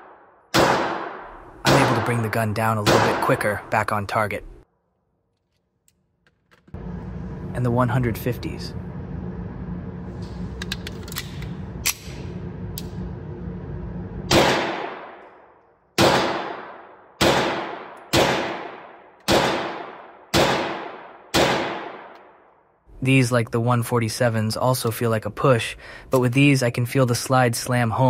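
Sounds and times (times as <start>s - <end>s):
pistol shots echoing indoors: 0.0s - 3.4s, 14.3s - 22.6s
steady low hum: 6.5s - 18.7s.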